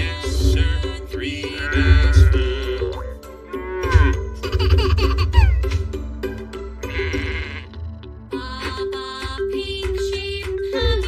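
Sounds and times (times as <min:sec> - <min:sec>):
children's song: 0:00.0 - 0:03.3, 0:08.2 - 0:11.0
cartoon animal calls: 0:06.8 - 0:07.8.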